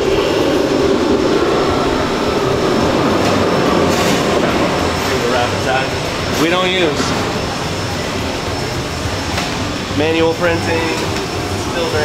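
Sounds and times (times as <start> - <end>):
rumble of fans and equipment: 0.0 - 12.0.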